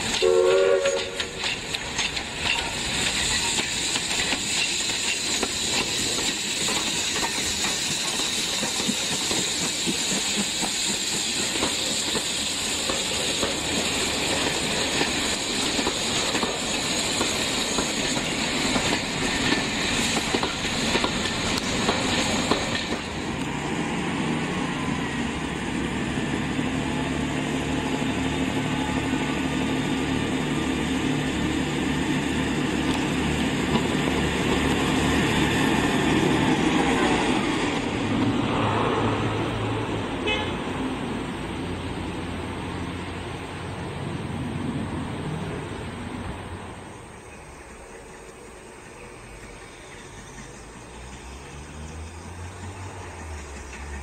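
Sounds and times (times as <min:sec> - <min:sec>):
diesel train engines humming: 0:00.0 - 0:54.0
steam locomotive hissing: 0:00.0 - 0:54.0.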